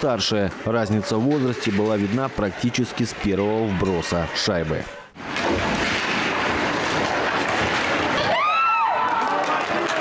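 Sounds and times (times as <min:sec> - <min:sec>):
hockey sticks clattering: 0:00.2 - 0:04.3, 0:05.2 - 0:10.0
skates scraping on ice: 0:05.2 - 0:10.0.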